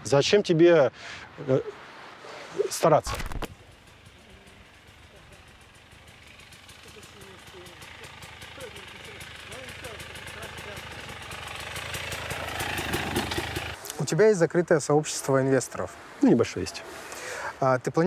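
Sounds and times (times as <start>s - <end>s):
dirt bike engine approaching: 2.6s - 13.8s.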